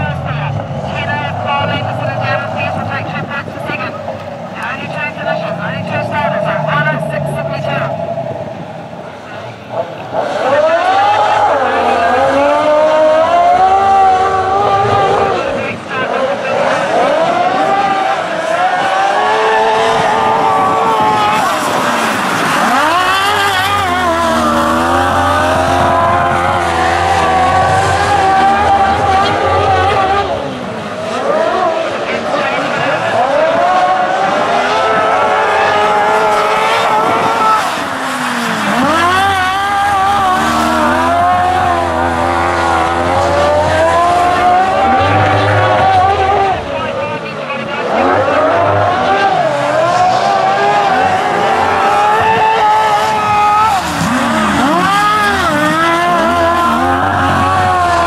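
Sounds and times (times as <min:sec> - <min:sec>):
racing engines accelerating: 0:00.0 - 0:58.0.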